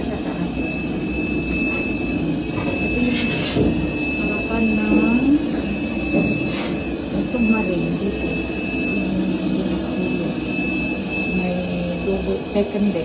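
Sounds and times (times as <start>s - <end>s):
people talking: 0.0s - 0.7s, 2.5s - 6.3s, 7.1s - 13.0s
machinery hum with high whine: 0.0s - 13.0s.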